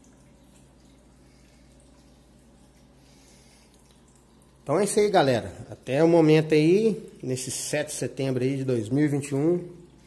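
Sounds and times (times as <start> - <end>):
low steady hum: 0.0 - 10.0
water trickling from aquarium filter: 0.0 - 10.0.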